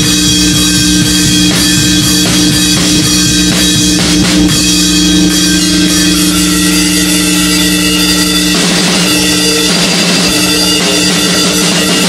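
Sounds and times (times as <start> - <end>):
distorted electric guitar chord: 0.0 - 12.0
drums and cymbals: 0.0 - 12.0.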